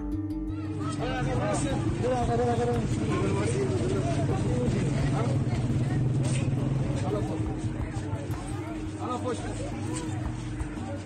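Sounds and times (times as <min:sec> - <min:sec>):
people's voices: 0:00.5 - 0:11.0
low engine hum: 0:00.9 - 0:11.0.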